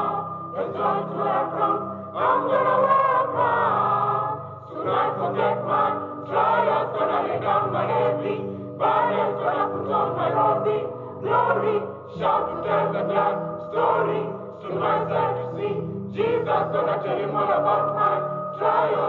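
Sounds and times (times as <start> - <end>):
church choir singing: 0.0 - 19.0.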